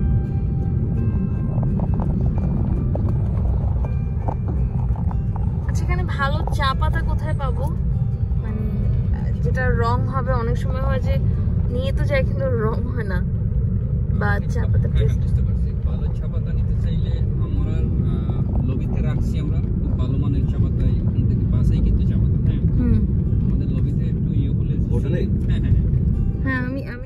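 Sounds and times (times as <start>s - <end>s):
car engine and tyres rumbling: 0.0s - 27.0s.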